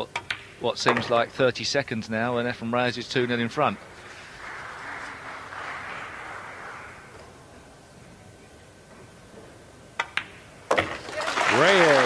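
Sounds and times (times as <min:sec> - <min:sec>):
audience applauding: 0:04.0 - 0:07.2, 0:11.0 - 0:12.0.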